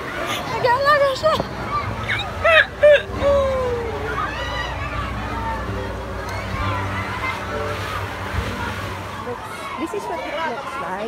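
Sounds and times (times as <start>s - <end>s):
background chatter of voices: 0.0s - 11.0s
low rumble: 1.5s - 9.5s.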